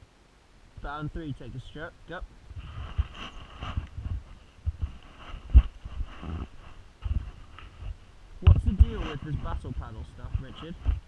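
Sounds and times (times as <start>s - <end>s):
oars knocking in oarlocks: 2.5s - 11.0s.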